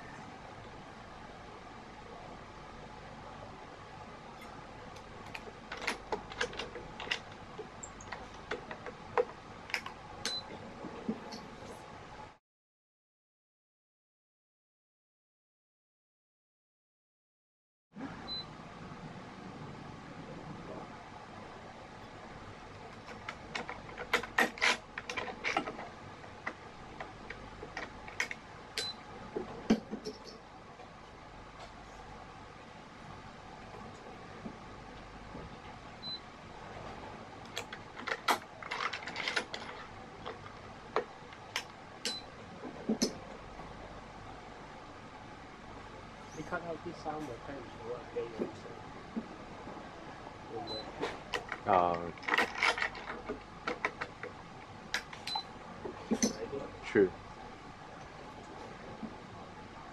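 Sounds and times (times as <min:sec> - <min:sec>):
low room hum: 0:00.0 - 0:12.4, 0:18.0 - 0:59.9.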